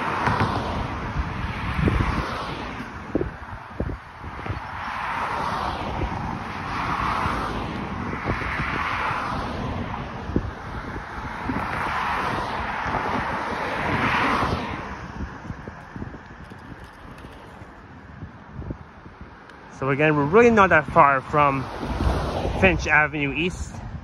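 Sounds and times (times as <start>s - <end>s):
cars passing: 0.0s - 24.0s
wind rumbling on microphone: 0.0s - 24.0s.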